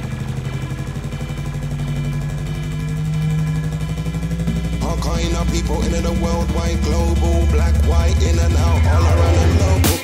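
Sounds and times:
low buzzing fluttering bass: 0:00.0 - 0:10.0.

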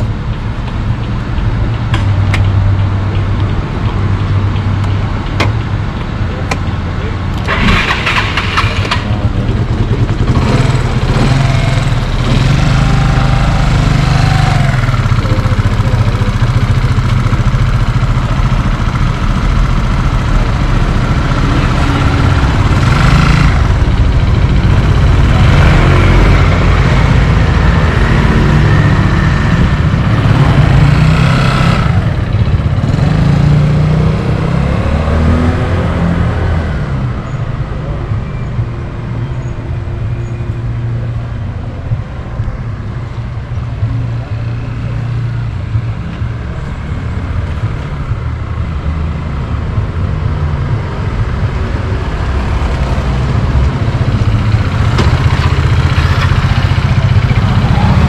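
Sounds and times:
scooter engine revving: 0:07.4 - 0:36.7, 0:52.2 - 0:58.0.

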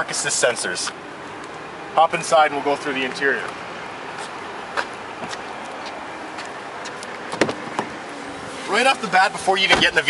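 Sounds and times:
steady outdoor hiss: 0:00.0 - 0:10.0
footsteps on pavement: 0:03.1 - 0:08.0.

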